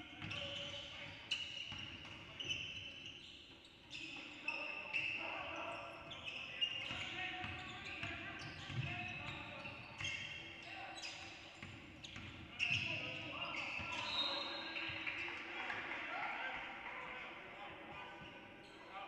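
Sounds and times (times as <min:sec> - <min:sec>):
sneakers squeaking on court: 0:00.1 - 0:15.3.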